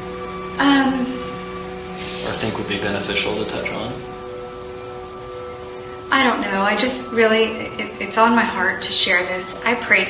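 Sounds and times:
soft sustained tone music: 0.0 - 10.0
faint hiss: 0.1 - 10.0.

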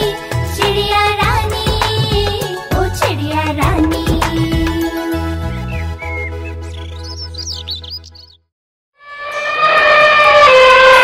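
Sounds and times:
children's song: 0.0 - 5.4
birds chirping: 5.2 - 8.5
downward sliding pitched tone: 9.0 - 11.0.

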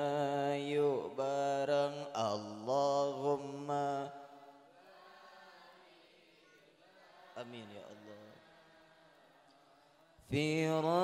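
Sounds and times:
man chanting melodically: 0.0 - 4.2, 10.2 - 11.0.

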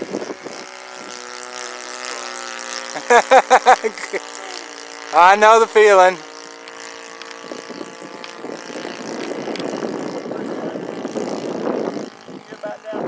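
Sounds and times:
model airplane engine flying overhead: 0.0 - 13.0.

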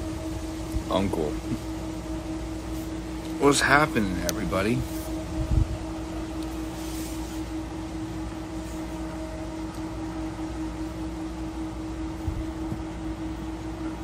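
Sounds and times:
steady hum: 0.0 - 14.0
wind rumbling on microphone: 5.2 - 6.2.

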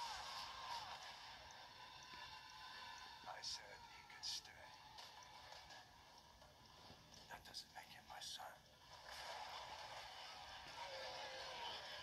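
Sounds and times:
quiet speech through small speaker: 2.0 - 5.0, 7.0 - 8.8.

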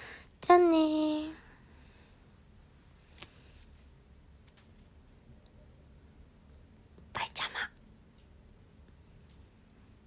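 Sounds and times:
woman whispering: 7.1 - 7.8.

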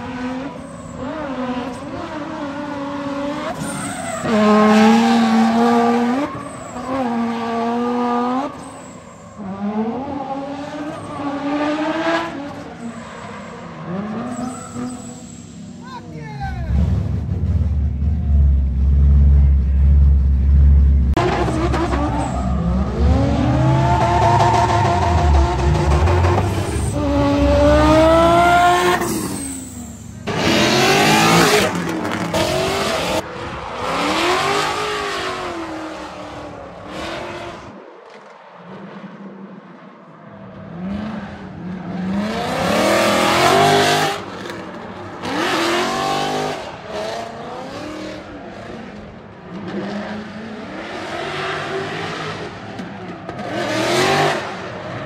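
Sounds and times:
car engines revving: 0.0 - 55.0
tyre squeal: 3.5 - 4.7, 6.0 - 7.3, 8.4 - 9.7, 12.6 - 15.8, 21.7 - 25.9, 26.5 - 30.2.

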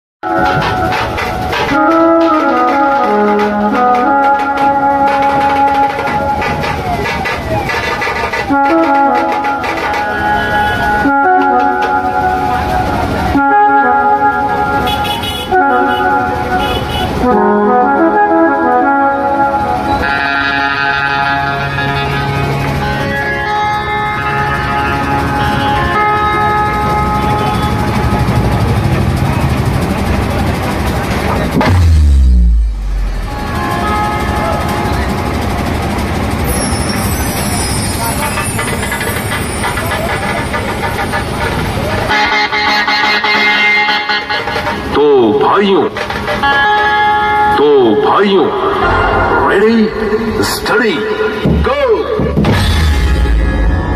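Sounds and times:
band drums: 0.2 - 13.9, 25.0 - 45.0, 45.8 - 47.5, 48.6 - 53.9
crowd noise: 0.2 - 18.0, 18.6 - 53.9
brass horns playing chords: 0.2 - 29.9, 31.0 - 36.4, 41.7 - 45.0, 46.5 - 51.9
amplified sound system: 15.6 - 46.0, 47.1 - 53.9
deep bass boom: 31.2 - 34.6, 48.8 - 53.9.

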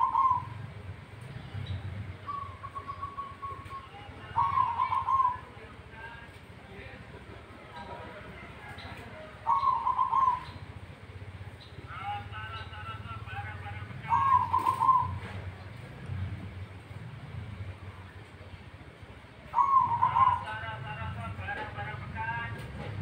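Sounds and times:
dove cooing: 0.0 - 0.7, 2.2 - 5.6, 9.0 - 10.8, 14.0 - 15.7, 19.4 - 20.6.

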